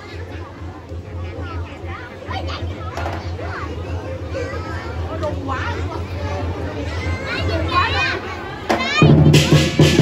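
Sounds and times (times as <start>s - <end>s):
children calling out: 0.0s - 10.0s.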